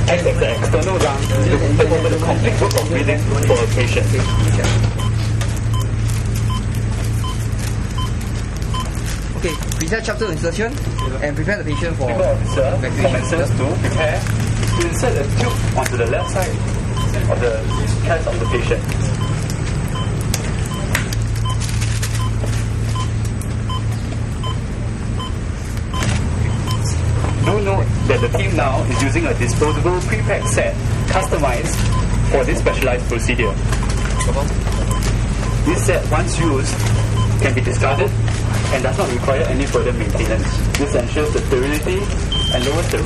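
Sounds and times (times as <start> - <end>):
patient monitor beeping: 0.0 - 43.0
steady low hum: 0.0 - 43.0.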